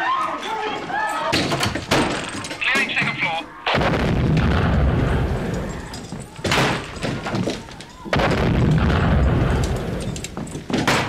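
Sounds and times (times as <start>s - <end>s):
loud explosion with rumble: 3.7s - 5.8s, 8.1s - 10.2s.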